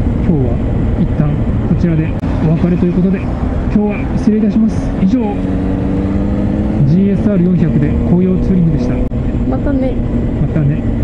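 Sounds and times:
motorcycle engine running: 0:00.0 - 0:11.0
wind and road rush: 0:00.0 - 0:11.0.

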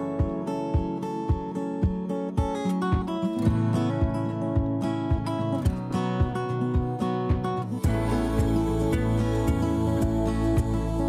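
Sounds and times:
background music with deep bass: 0:00.0 - 0:11.0.

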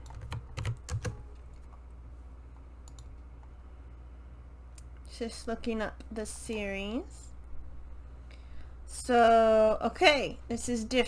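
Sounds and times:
computer keyboard typing: 0:00.0 - 0:01.7.

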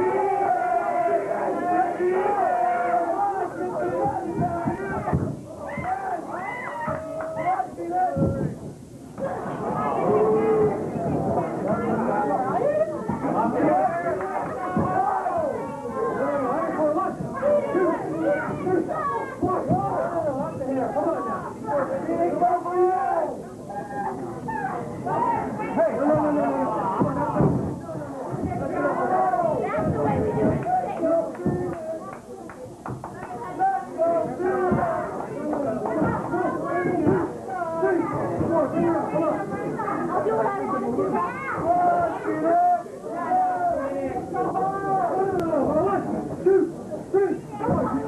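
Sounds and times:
people shouting: 0:00.0 - 0:08.3, 0:09.3 - 0:20.3
people yelling: 0:00.0 - 0:08.3, 0:09.2 - 0:20.3.

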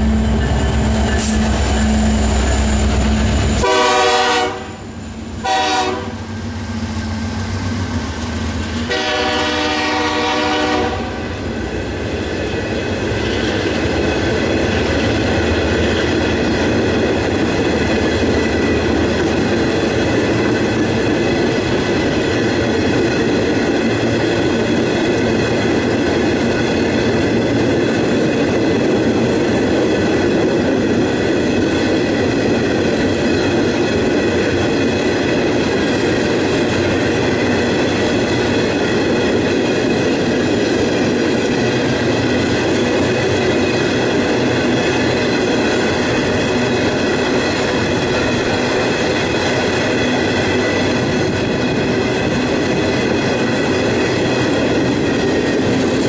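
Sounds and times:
diesel locomotive engine rumbling: 0:00.0 - 0:56.0
steel wheels on rails: 0:00.0 - 0:56.0
train horn blasts: 0:03.5 - 0:06.3, 0:08.8 - 0:11.3.

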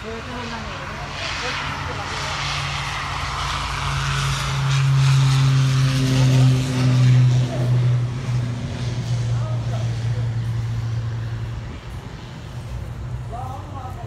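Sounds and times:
propeller plane drone: 0:00.0 - 0:14.0.

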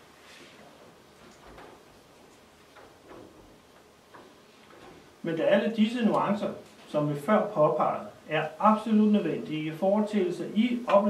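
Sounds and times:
faint soft ticks and rustles: 0:00.4 - 0:05.3.

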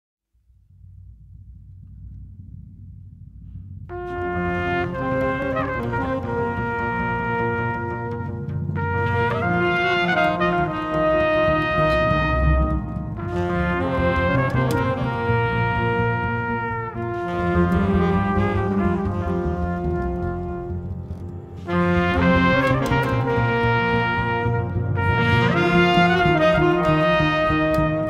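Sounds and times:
low rumble: 0:00.3 - 0:28.0
double bass: 0:00.4 - 0:28.0
trumpet and saxophone melody: 0:03.9 - 0:28.0.

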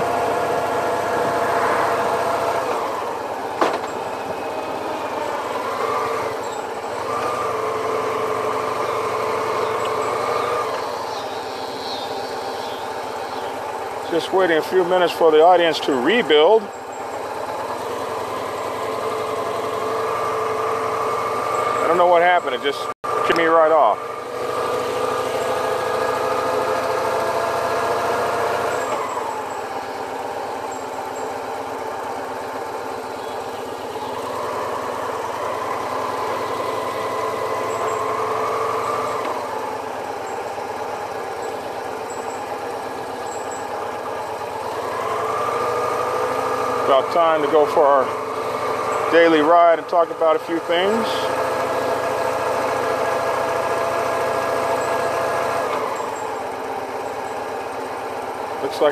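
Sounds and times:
motorcycle engine running: 0:00.0 - 0:58.9.

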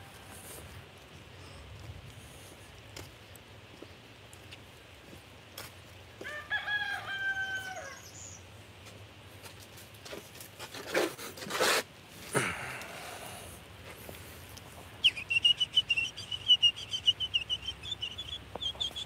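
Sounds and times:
rooster crowing: 0:06.2 - 0:08.2.

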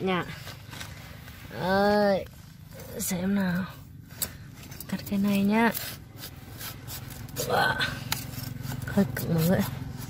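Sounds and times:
knife cutting cauliflower stalk: 0:05.0 - 0:10.0.

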